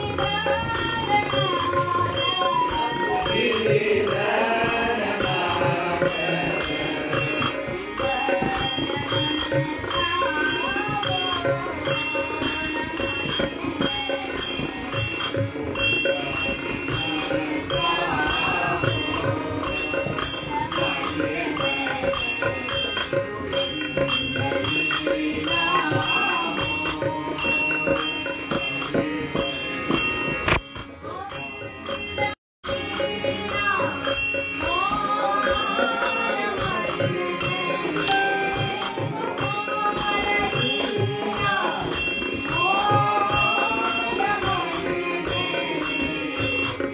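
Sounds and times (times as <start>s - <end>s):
devotional group singing: 0.0s - 30.0s, 32.7s - 46.9s
hand cymbals struck together: 0.0s - 46.9s.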